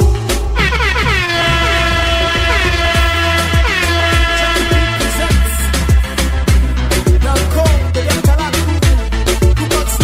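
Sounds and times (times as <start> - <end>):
dance music: 0.0 - 10.0
horn blast sliding down: 0.6 - 7.0
kick drum beat: 1.0 - 9.6.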